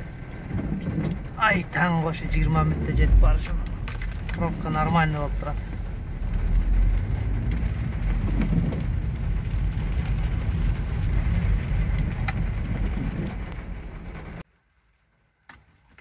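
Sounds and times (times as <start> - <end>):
rain drumming on car roof: 0.0 - 14.4
car engine and road rumble: 0.0 - 14.5.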